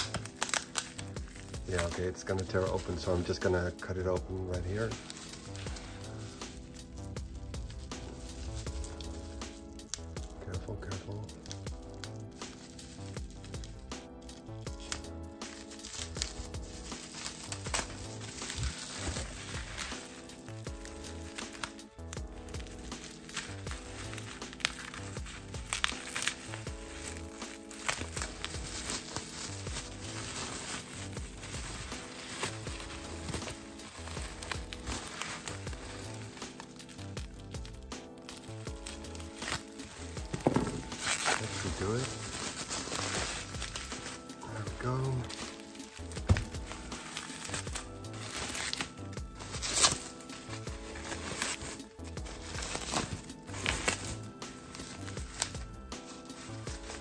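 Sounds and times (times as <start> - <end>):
background music: 0.0 - 57.0
bubble wrap crinkling: 0.0 - 57.0.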